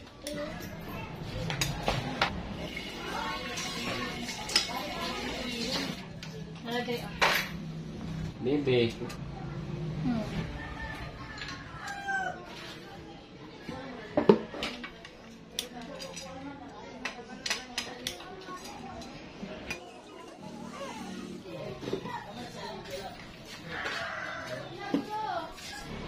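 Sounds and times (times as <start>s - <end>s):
rooster crowing: 10.4s - 12.6s, 23.6s - 24.9s.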